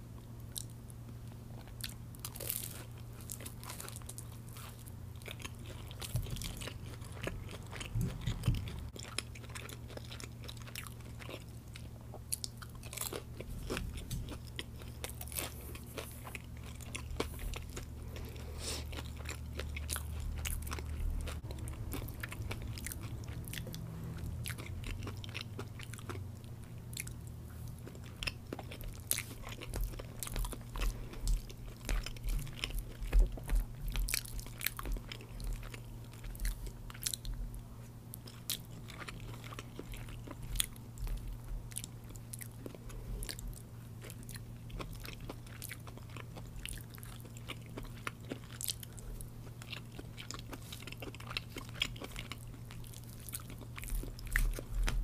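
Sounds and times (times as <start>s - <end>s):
steady low hum: 0.0s - 55.0s
chewing crunchy food: 0.1s - 55.0s.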